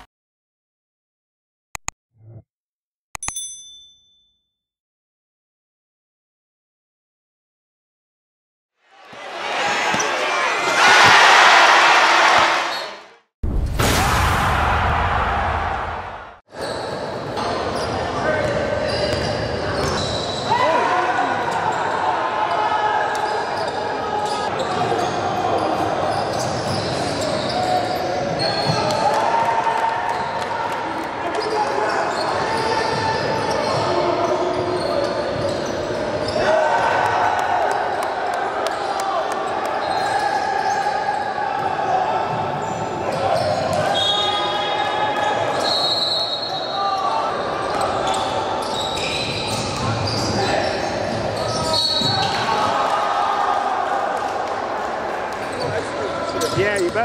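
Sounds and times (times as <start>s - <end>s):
sneakers squeaking: 9.0s - 11.4s, 12.3s - 13.0s, 16.5s - 20.6s, 23.1s - 28.9s, 31.4s - 36.4s, 38.7s - 41.3s, 42.5s - 52.7s, 55.4s - 57.0s.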